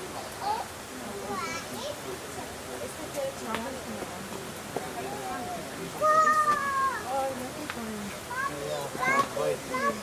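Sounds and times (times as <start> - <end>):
child calling out: 6.0 - 7.1.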